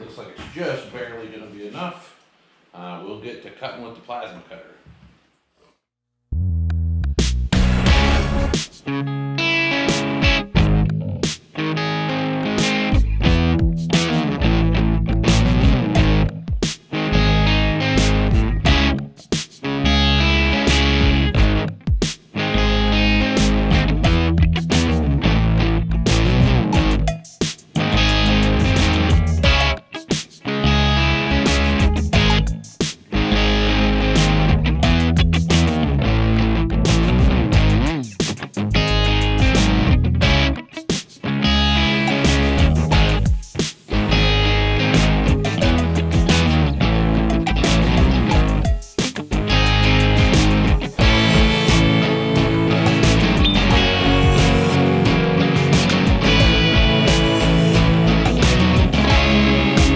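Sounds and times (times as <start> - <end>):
rock music: 7.2 - 59.9.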